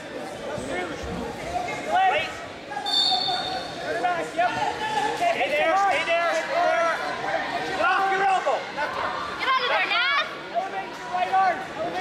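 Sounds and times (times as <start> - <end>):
people shouting in a large hall: 1.6 - 12.0
high whistle blast: 2.9 - 3.7.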